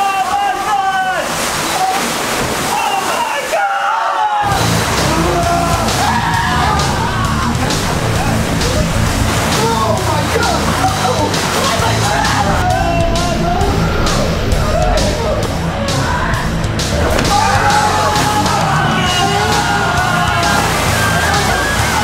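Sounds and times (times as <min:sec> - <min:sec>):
water balloons sloshing: 0:00.0 - 0:03.7, 0:04.4 - 0:22.0
people screaming: 0:00.0 - 0:22.0.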